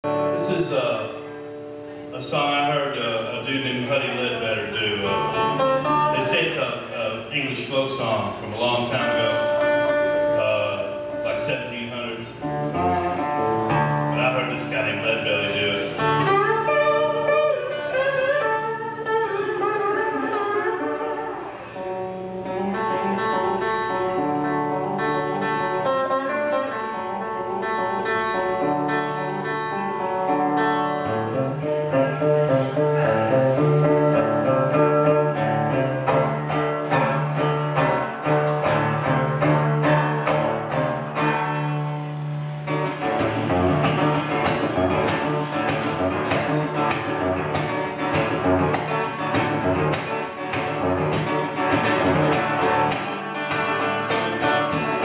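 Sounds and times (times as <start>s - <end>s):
resonator guitar fingerstyle blues: 0.0s - 55.0s.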